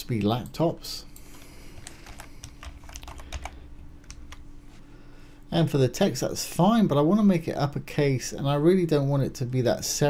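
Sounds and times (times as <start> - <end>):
computer keyboard typing: 1.2 - 4.4.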